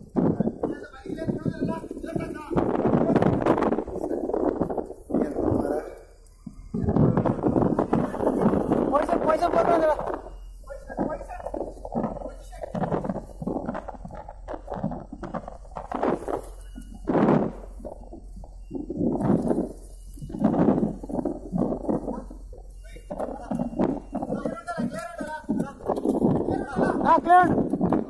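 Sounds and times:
faint low hum: 0:00.0 - 0:28.0
people talking and calling out: 0:00.0 - 0:28.0.

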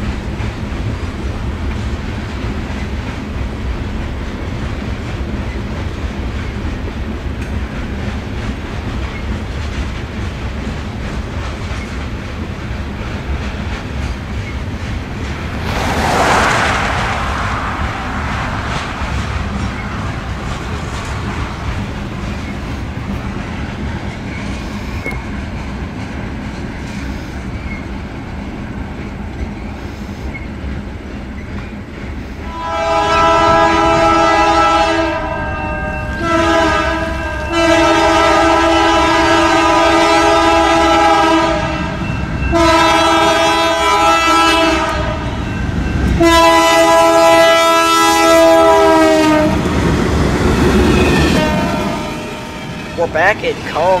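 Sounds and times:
freight cars rumbling: 0:00.0 - 0:54.0
train passing close by: 0:00.0 - 0:54.0
locomotive air horn blasts: 0:32.4 - 0:45.4, 0:46.2 - 0:49.6, 0:51.0 - 0:52.6.

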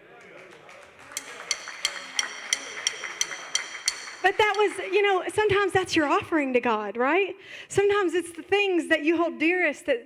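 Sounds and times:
cymbal tapped in steady beat: 0:01.1 - 0:05.1.

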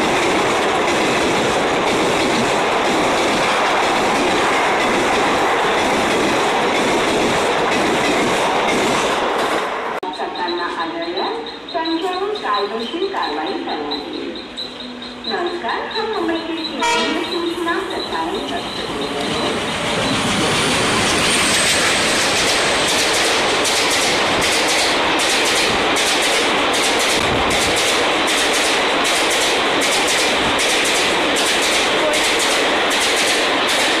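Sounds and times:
wheels clacking over rail joints: 0:00.0 - 0:09.8, 0:11.6 - 0:34.0
train roaring past: 0:00.0 - 0:34.0
voices: 0:10.0 - 0:20.9
horn-like sounds: 0:16.7 - 0:17.7.

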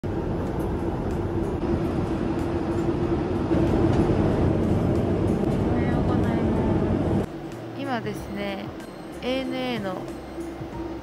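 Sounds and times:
airliner cabin roar: 0:00.0 - 0:07.4.

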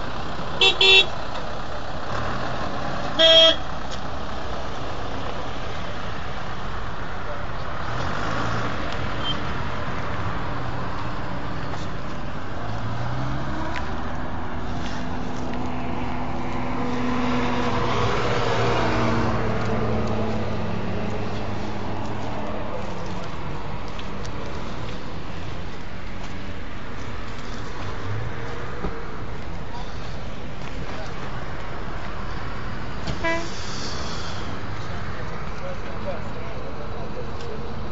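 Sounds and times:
roadside traffic noise: 0:00.0 - 0:37.9
vehicle engines running: 0:00.0 - 0:37.9
car horn toot: 0:00.6 - 0:01.1, 0:03.2 - 0:03.6, 0:33.1 - 0:33.6.

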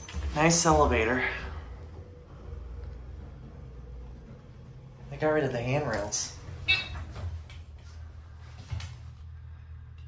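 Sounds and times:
elevator low hum: 0:00.0 - 0:10.0.

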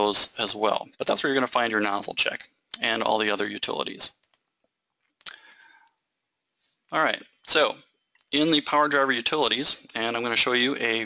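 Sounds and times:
computer mouse clicking: 0:04.1 - 0:04.5.

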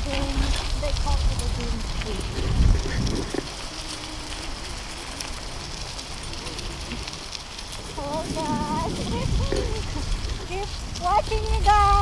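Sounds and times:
bicycle tyres crackling over leaves: 0:00.0 - 0:12.0
wind rumble on microphone: 0:00.0 - 0:12.0.

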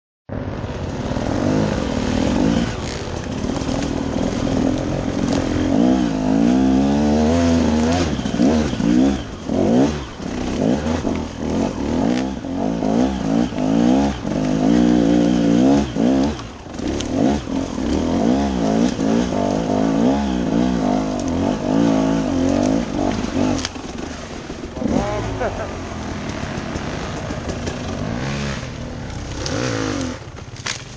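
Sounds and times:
dirt bike engine revving: 0:00.3 - 0:30.9.

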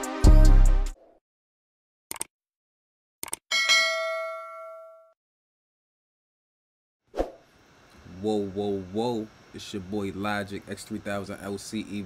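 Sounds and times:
notification bell ding: 0:03.5 - 0:05.2.

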